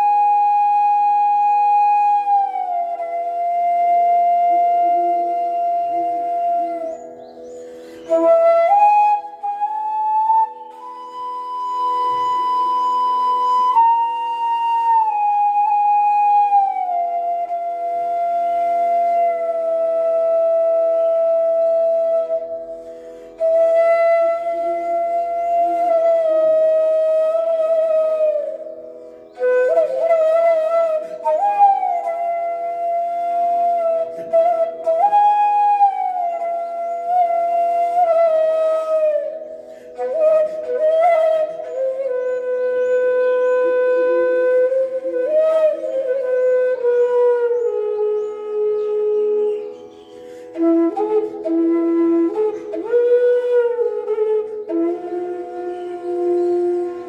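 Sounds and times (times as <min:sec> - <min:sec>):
bamboo flute melody: 0:00.0 - 0:57.0.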